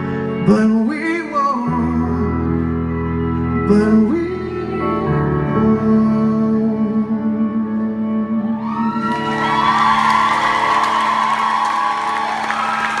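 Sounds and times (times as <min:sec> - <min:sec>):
audience cheering and applause: 0:08.6 - 0:13.0.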